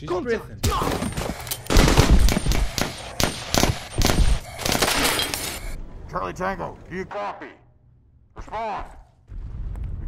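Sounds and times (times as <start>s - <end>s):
rapid gunfire bursts: 1.7s - 5.0s.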